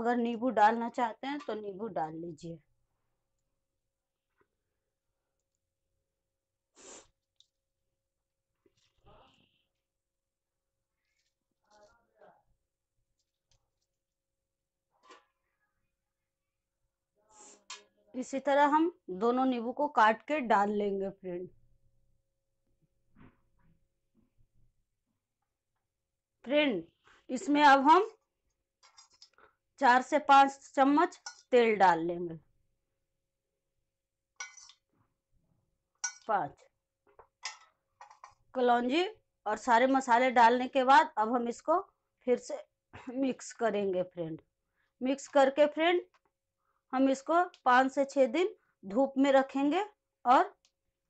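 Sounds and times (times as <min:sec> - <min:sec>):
faint voice sounds: 0:09.0 - 0:09.6
steel spoon clinking on bowl: 0:31.2 - 0:31.5, 0:34.4 - 0:34.8, 0:36.0 - 0:36.3.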